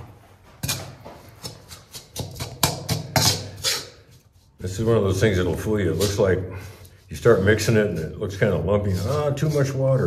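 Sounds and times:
metal spoon stirring cement mix: 0.5 - 10.0.

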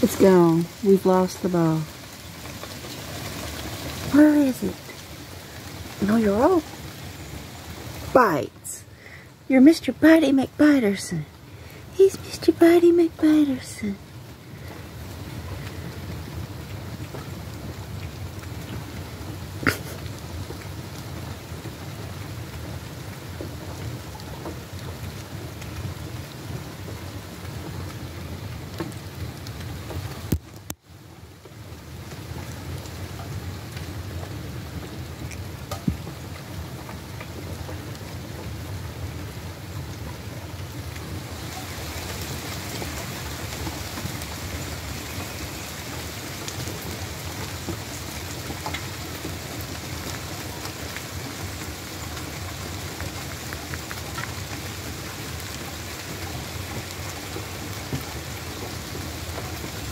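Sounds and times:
steady rain hiss: 0.0 - 59.9.

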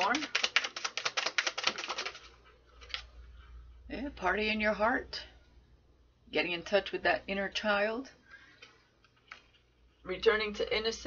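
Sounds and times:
cards being shuffled: 0.0 - 3.1.

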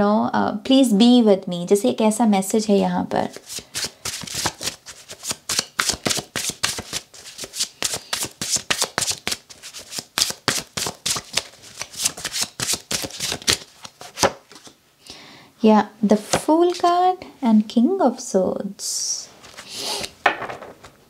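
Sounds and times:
cards shuffled by hand: 3.3 - 14.8.

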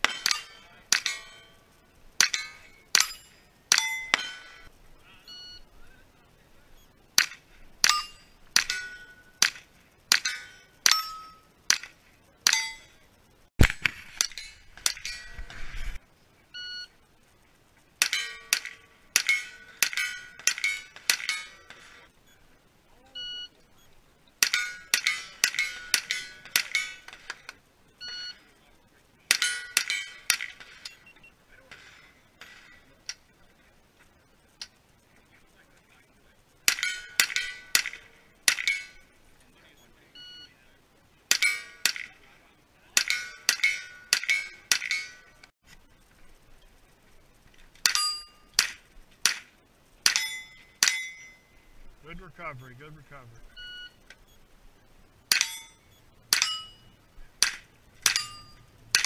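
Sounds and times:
steel target ringing: 0.0 - 4.7, 7.2 - 11.8, 12.5 - 13.0, 18.0 - 22.0, 24.4 - 27.5, 29.3 - 31.0, 36.7 - 39.1, 41.3 - 42.2, 43.0 - 45.4, 47.8 - 48.7, 50.0 - 51.5, 55.3 - 59.0
shot timer beep: 5.2 - 5.7, 16.6 - 16.9, 23.1 - 24.0, 28.0 - 28.5, 52.1 - 54.4.

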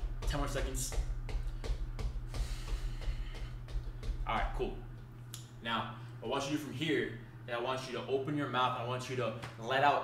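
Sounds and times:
bare feet marching on floor: 0.0 - 5.2
low background hum: 0.0 - 10.0.

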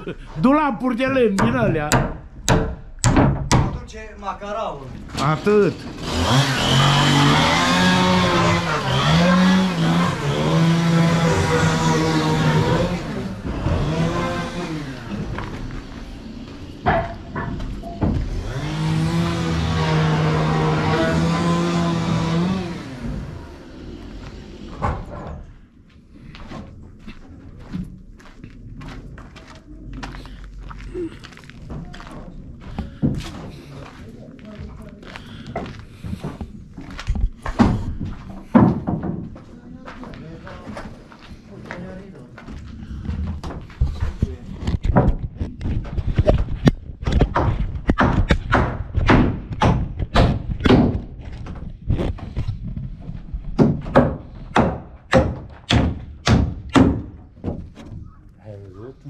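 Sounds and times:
heavy objects knocking and thudding: 1.1 - 3.9, 16.8 - 22.0, 31.6 - 33.6, 35.5 - 39.5, 43.0 - 58.1
motor drone: 5.9 - 16.8, 18.2 - 24.8.

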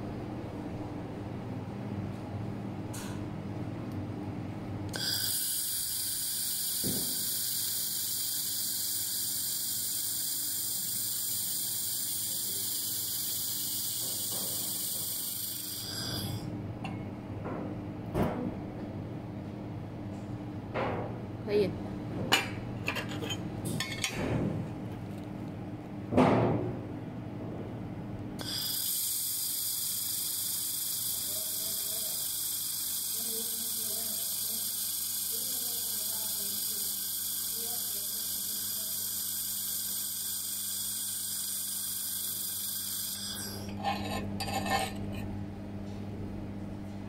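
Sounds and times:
laser welder hiss: 4.9 - 16.4, 28.4 - 43.7.

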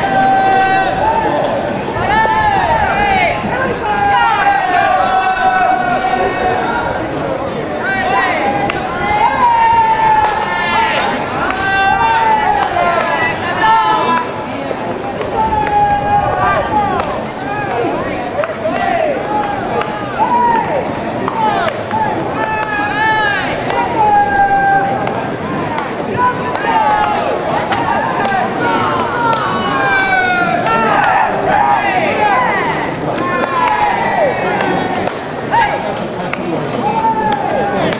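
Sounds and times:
players shouting drawn-out calls: 0.0 - 37.9.

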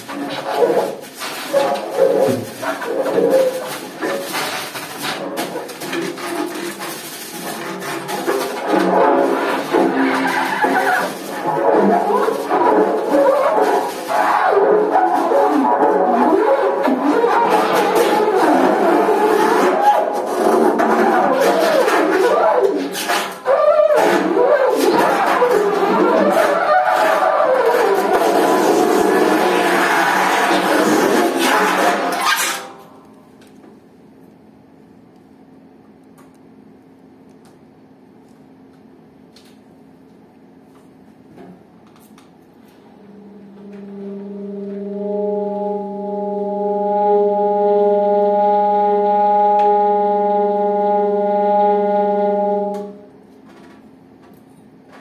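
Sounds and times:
tenor saxophone playing: 42.9 - 53.1.

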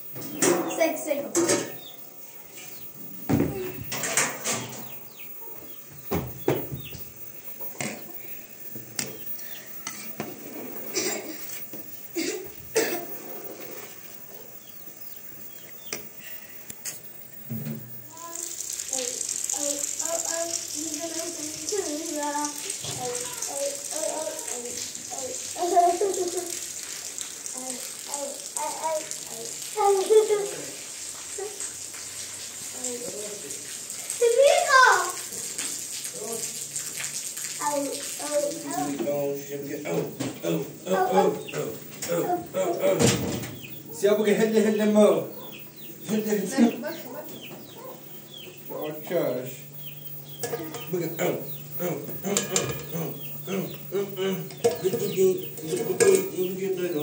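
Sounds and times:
children talking: 0.0 - 16.3, 18.0 - 31.8, 32.6 - 57.0
water hissing: 0.0 - 57.0.

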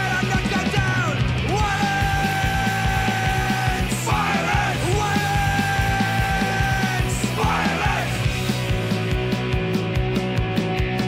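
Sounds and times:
shouted vocals: 0.0 - 8.3
punk rock band playing: 0.0 - 11.0.

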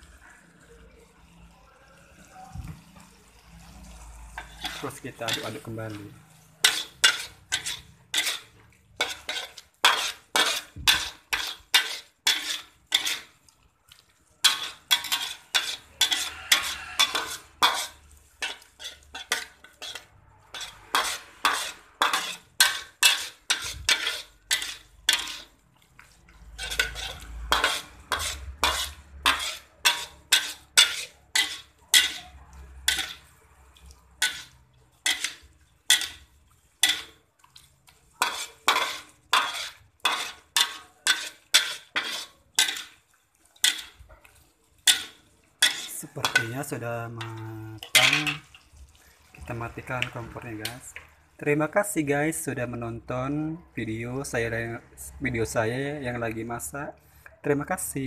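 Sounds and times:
spatula scraping a pan: 0.0 - 51.3.

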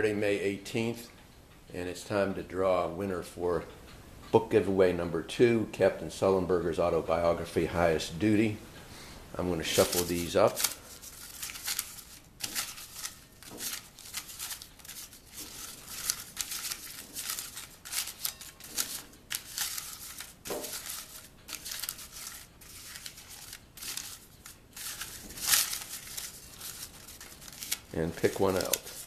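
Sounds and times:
paper slips rustling in bowl: 9.4 - 29.0.

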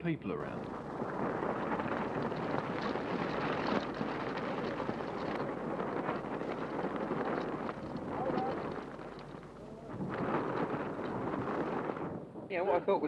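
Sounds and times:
wind rushing on microphone: 0.1 - 13.0
film crackles: 0.6 - 12.4.

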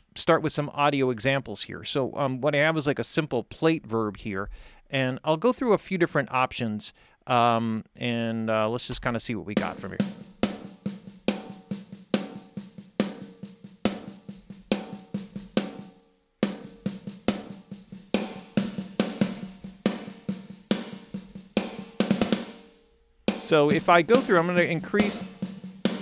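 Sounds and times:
drum beat with plate reverb: 8.9 - 26.0.

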